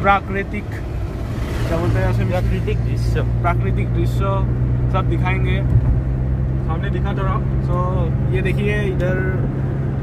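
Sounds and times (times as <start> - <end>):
car engine and road noise hum: 0.0 - 10.0.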